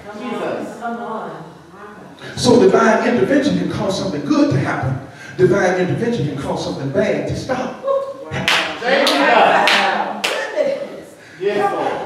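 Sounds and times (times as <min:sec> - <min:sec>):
hand claps: 0:08.4 - 0:10.5.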